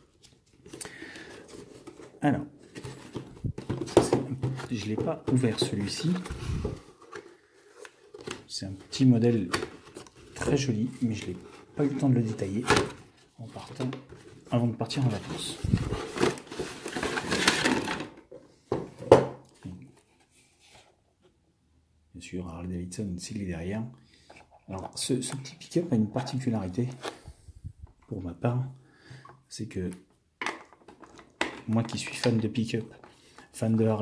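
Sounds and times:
cardboard packaging rustling: 0:00.0 - 0:18.2.

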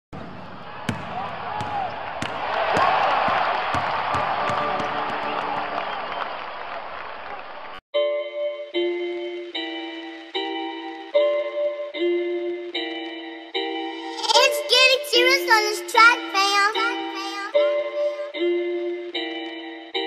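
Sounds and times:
basketball bouncing: 0:00.2 - 0:05.4.

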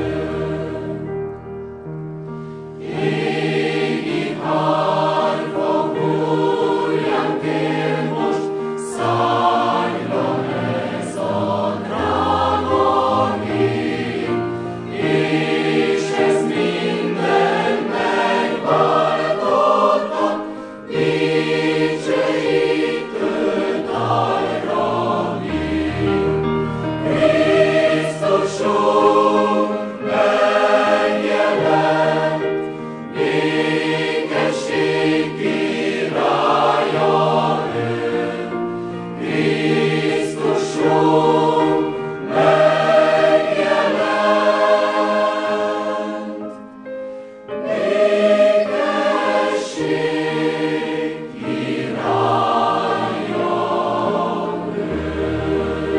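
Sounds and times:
mixed choir singing: 0:00.0 - 0:01.3, 0:02.7 - 0:55.9.

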